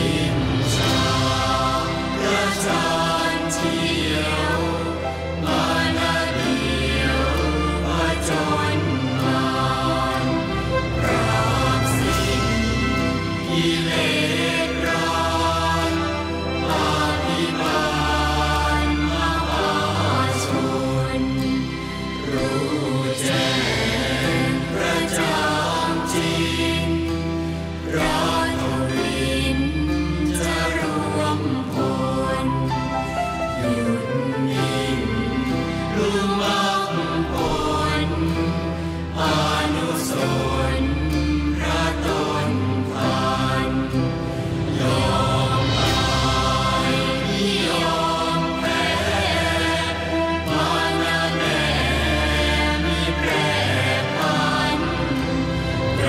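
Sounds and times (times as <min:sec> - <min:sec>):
group chanting in unison: 0:00.0 - 0:32.7, 0:33.8 - 0:56.0
musical accompaniment with low bass: 0:00.0 - 0:56.0.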